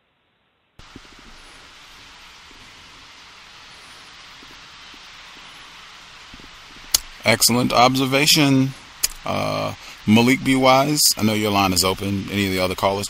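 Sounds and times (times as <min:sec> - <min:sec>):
audio line hiss: 0:00.0 - 0:13.0
faint ticks: 0:03.7 - 0:07.2, 0:09.0 - 0:09.3.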